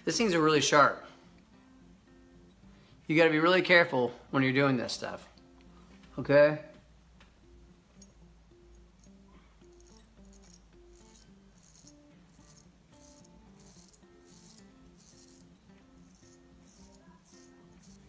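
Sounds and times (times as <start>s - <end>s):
quiet background music: 0.0s - 18.0s
razor scraping stubble: 8.9s - 18.0s.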